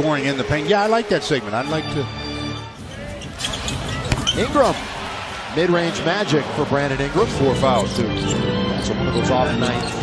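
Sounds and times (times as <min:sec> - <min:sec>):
basketball bouncing on hardwood: 0:03.7 - 0:04.4.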